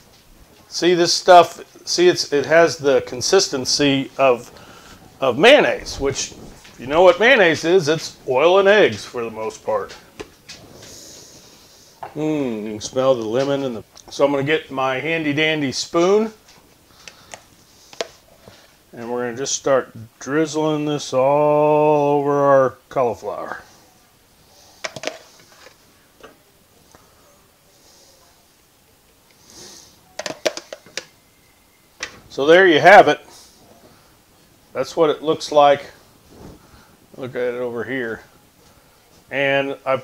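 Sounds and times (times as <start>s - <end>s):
person sniffing: 10.7s - 12.0s, 29.4s - 30.0s.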